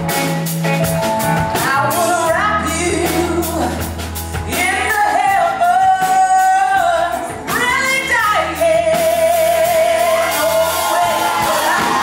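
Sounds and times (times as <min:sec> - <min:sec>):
rock band playing: 0:00.0 - 0:12.0
woman singing: 0:01.4 - 0:12.0.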